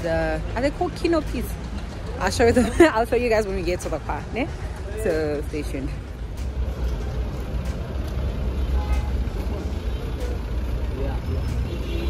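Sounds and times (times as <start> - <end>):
low urban rumble: 0.0 - 12.0.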